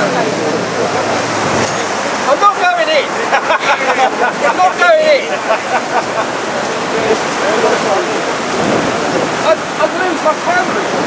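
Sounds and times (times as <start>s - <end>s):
rushing wind: 0.0s - 11.0s
surf: 0.0s - 11.0s.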